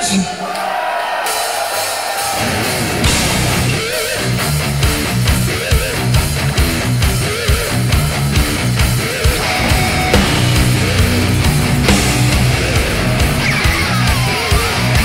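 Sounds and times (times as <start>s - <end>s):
heavy metal band playing live: 1.2s - 15.0s
lead guitar line: 3.1s - 15.0s.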